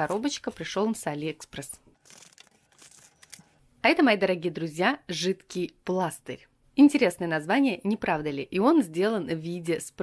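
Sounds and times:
person speaking: 0.0 - 1.9.

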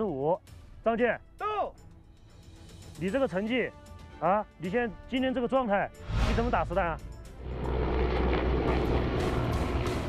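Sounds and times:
background music: 0.0 - 10.0
helicopter rumble: 6.7 - 10.0.

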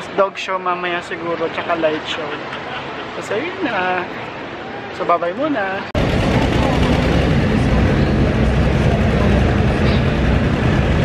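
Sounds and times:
tractor engine under load: 6.0 - 11.0.

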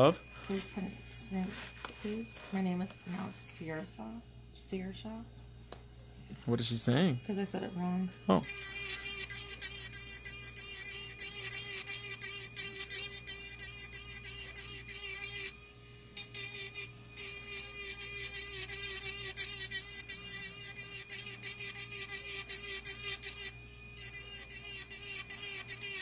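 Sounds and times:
electric nail file humming: 0.0 - 26.0
nail file rasping: 8.4 - 15.6, 16.2 - 26.0.

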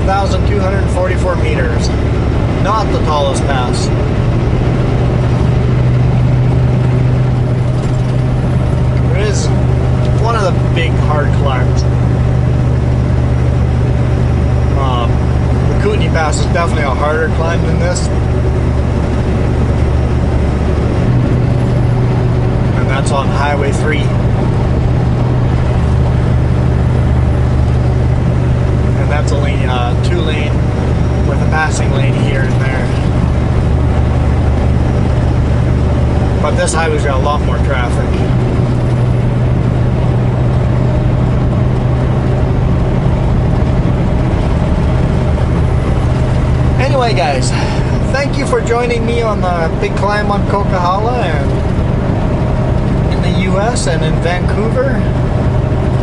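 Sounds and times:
diesel truck engine droning: 0.0 - 56.0.

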